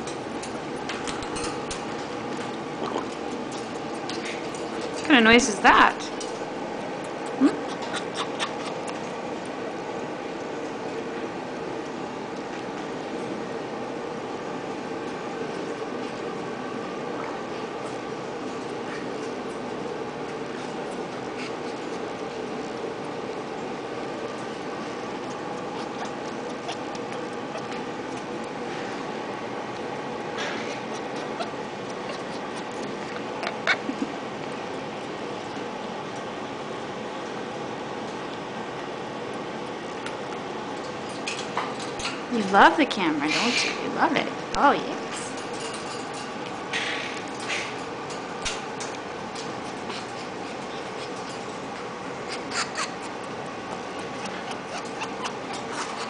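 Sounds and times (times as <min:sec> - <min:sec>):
steady background hum: 0:00.0 - 0:56.0
parrot beak clicking: 0:52.3 - 0:56.0.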